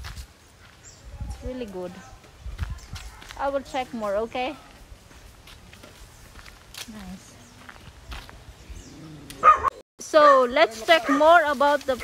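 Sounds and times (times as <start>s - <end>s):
dog barking: 9.4s - 11.4s.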